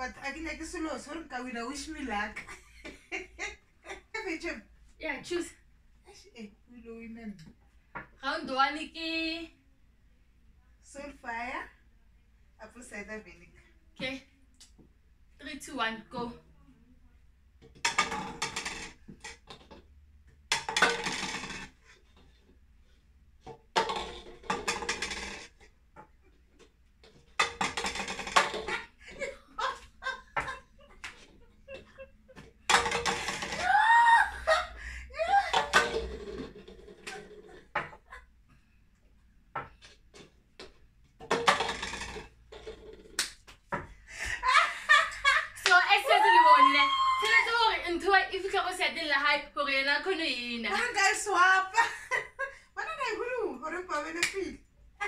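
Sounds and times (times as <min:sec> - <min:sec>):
plastic cups knocking on wooden table: 0:17.6 - 0:22.5, 0:23.4 - 0:33.7, 0:35.5 - 0:38.2, 0:39.5 - 0:44.0.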